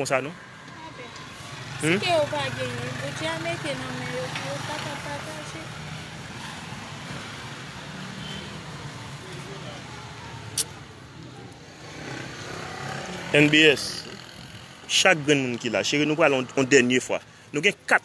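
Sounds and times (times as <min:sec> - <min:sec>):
woman's voice: 0:01.9 - 0:05.8.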